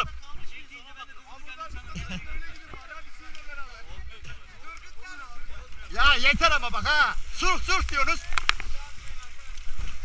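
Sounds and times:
people talking and calling out: 0.0s - 10.0s.

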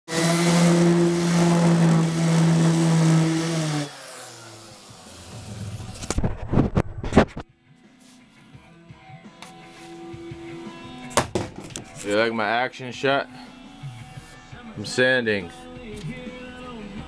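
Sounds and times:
electric palm sander running: 0.1s - 6.1s
knocks from camera handling: 11.2s - 11.9s.

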